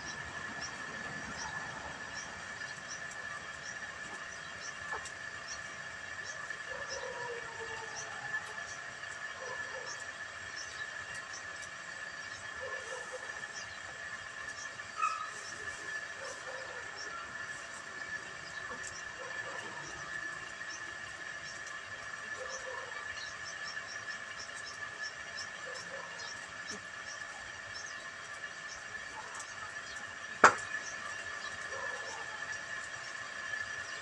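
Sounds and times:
steady high-pitched whine: 0.0 - 34.0.

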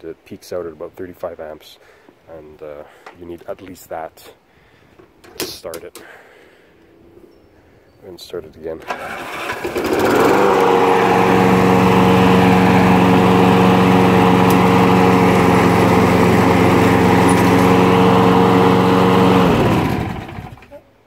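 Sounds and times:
electric starter: 8.8 - 20.8
lawnmower engine running: 8.8 - 20.8.

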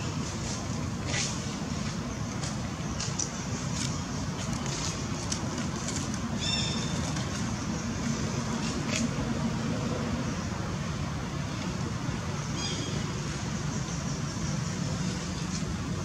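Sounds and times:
distant traffic rumble: 0.0 - 16.0.

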